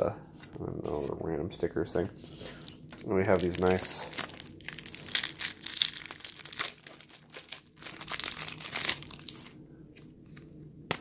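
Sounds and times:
plastic wrapping crinkling: 2.2s - 9.6s.

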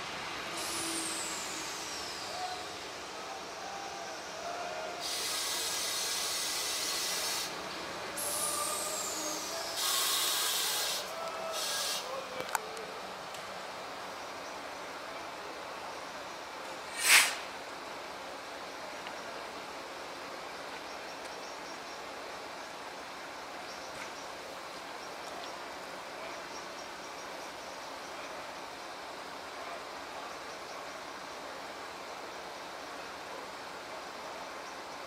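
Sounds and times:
sharp hiss: 0.0s - 12.2s, 16.6s - 18.2s
low background noise: 0.0s - 35.0s.

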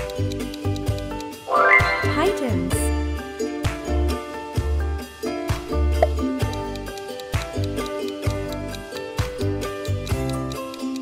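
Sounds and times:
pitched sweep sound effect: 1.5s - 2.7s
upbeat ukulele music: 1.5s - 4.2s.

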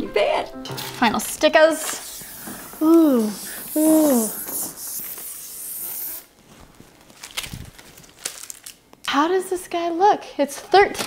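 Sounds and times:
high steady hiss: 1.5s - 6.6s.

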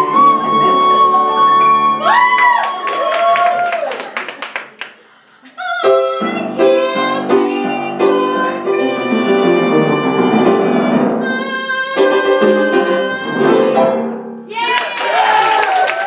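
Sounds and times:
woman singing: 0.0s - 2.4s, 5.5s - 14.8s
upright piano accompaniment: 5.9s - 14.5s.

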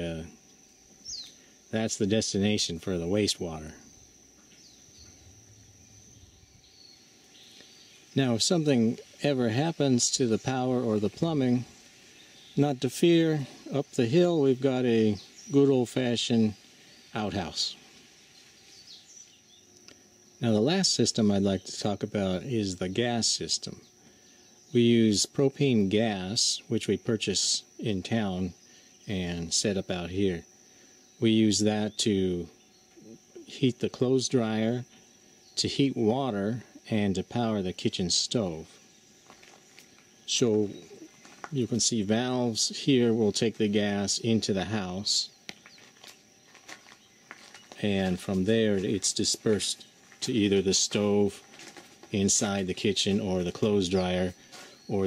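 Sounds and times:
man speaking: 0.0s - 0.4s, 1.7s - 3.9s, 8.2s - 11.8s, 12.6s - 16.6s, 17.2s - 17.9s, 20.4s - 23.8s, 24.7s - 30.4s, 31.2s - 34.9s, 35.6s - 38.8s, 40.3s - 45.4s, 47.7s - 55.0s
faint outdoor ambience: 0.0s - 55.0s
thin steady high tone: 0.0s - 55.0s.

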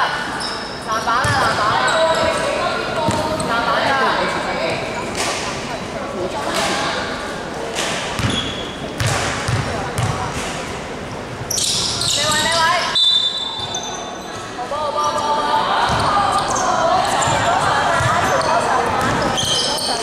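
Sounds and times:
basketball bouncing on hardwood: 9.0s - 10.2s.

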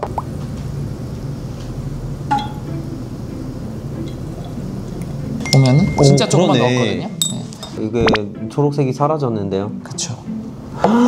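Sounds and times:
glass dropper clinking beaker: 2.3s - 2.6s, 5.4s - 8.2s.

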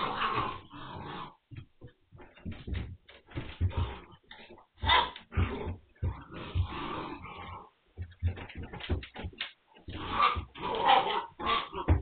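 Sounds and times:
puppies growling and yapping: 0.0s - 1.5s, 9.8s - 12.0s.

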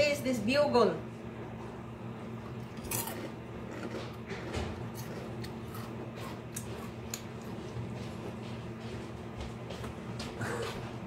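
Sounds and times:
person chewing crunchy snack: 2.6s - 7.8s.

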